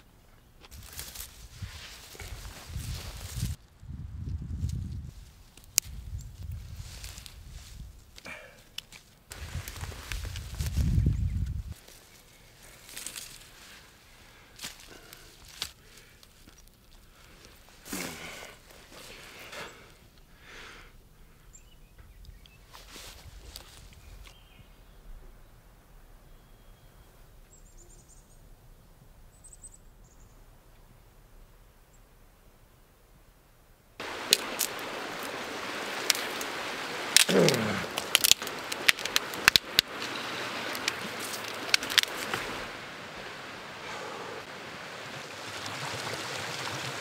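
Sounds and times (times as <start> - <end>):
hands digging in dry soil: 0.6 - 3.6, 4.3 - 20.0, 34.0 - 42.8
roots tearing and rustling: 0.6 - 14.0, 14.6 - 19.6, 34.0 - 43.0
creek rushing: 34.0 - 47.0
small snaps: 37.1 - 39.9, 40.7 - 42.4.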